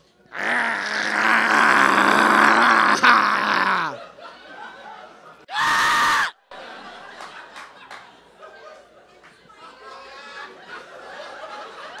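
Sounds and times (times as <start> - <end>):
man screaming into a microphone: 5.5 - 6.4.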